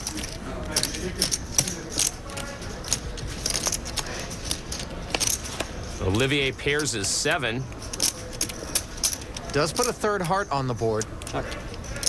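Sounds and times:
murmur of voices: 0.0 - 12.0
poker chips clicking: 0.0 - 12.0.

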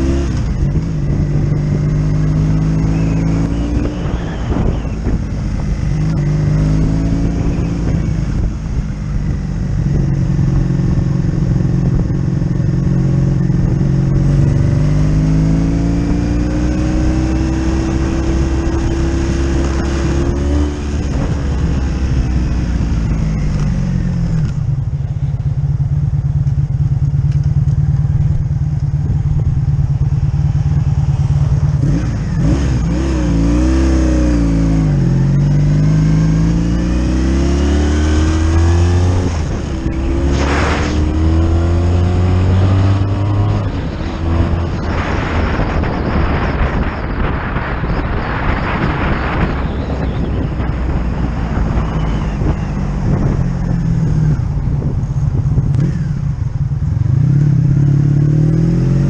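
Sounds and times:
motorcycle engine accelerating: 0.0 - 59.0.

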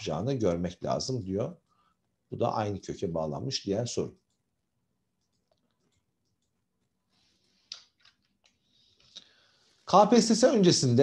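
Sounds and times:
person speaking: 0.0 - 4.5.

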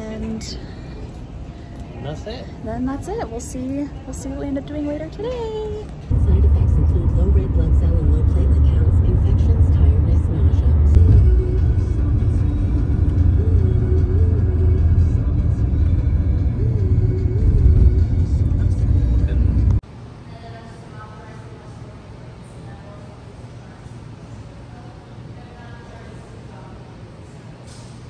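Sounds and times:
faint music: 0.0 - 27.9
car road rumble: 5.3 - 19.8.

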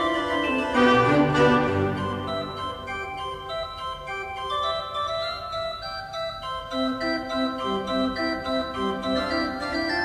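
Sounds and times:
slow organ music: 0.0 - 10.0.

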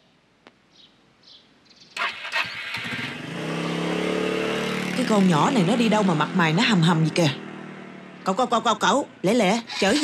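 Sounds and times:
scooter engine starting and running: 2.0 - 10.0.

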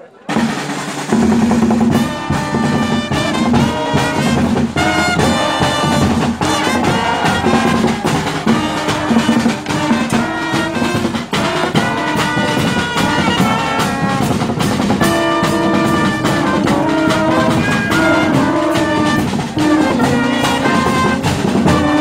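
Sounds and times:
trumpets and brass: 0.0 - 22.0
bass drums: 0.3 - 22.0
snare drums: 0.3 - 22.0
surdos beating: 0.3 - 22.0.

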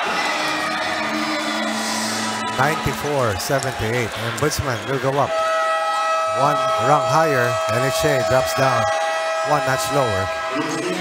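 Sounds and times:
crowd noise: 0.0 - 11.0
man talking: 2.6 - 5.3, 6.3 - 8.9, 9.5 - 11.0.

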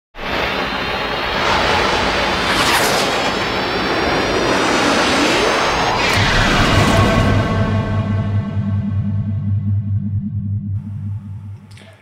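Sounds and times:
rushing whoosh with pitch glides: 0.2 - 9.8
faint high rising tone: 7.1 - 12.0.

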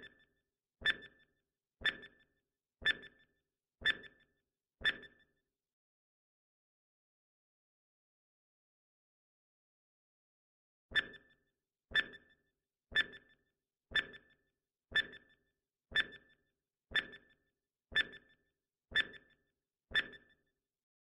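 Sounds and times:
clock-like ticks: 0.8 - 3.2, 3.8 - 5.2, 10.9 - 20.4.

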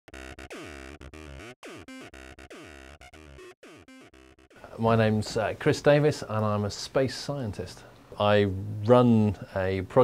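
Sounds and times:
intro music with falling swoops: 0.1 - 4.8.

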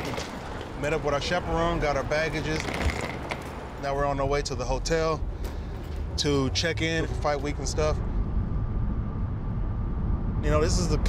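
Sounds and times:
car rumbling on the move: 0.0 - 11.0.

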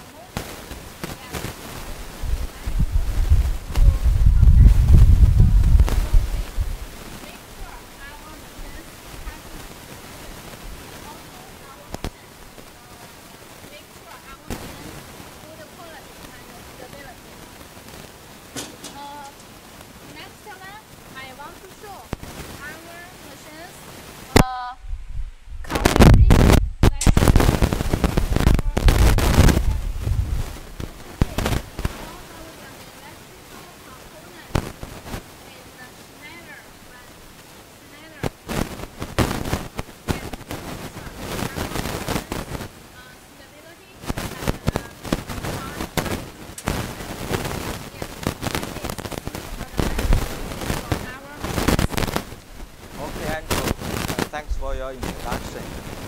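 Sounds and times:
faint distant voices: 0.0 - 24.8, 30.7 - 56.0
irregular knocking and rubbing: 18.5 - 19.5.

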